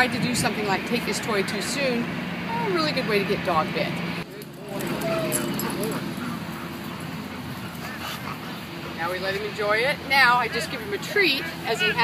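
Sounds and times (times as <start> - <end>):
dog whimpering: 4.7 - 6.4.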